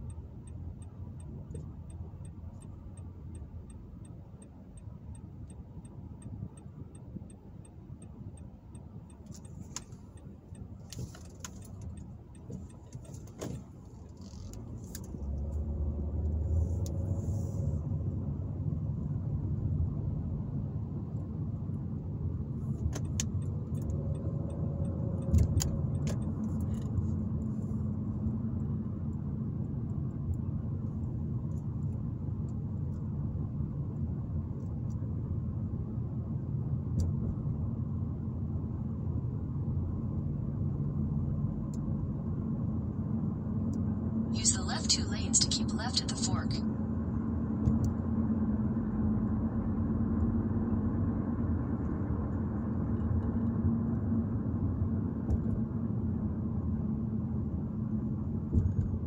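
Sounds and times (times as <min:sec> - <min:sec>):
car cabin road and engine rumble: 0:00.0 - 0:59.0.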